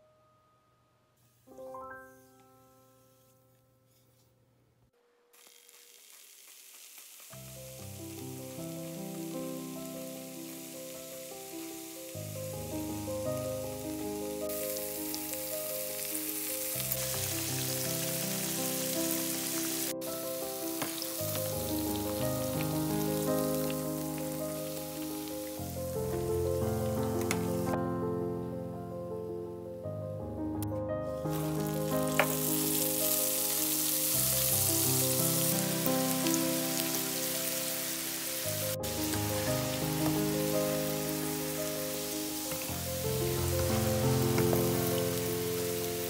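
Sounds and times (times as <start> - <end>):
melodic background music: 1.5 - 3.3, 7.5 - 46.0
meat sizzling in hot oil: 5.4 - 27.7, 31.3 - 46.0.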